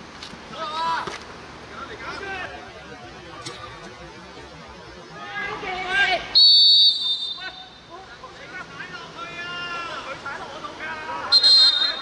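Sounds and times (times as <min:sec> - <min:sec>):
man shouting: 0:09.0 - 0:10.2.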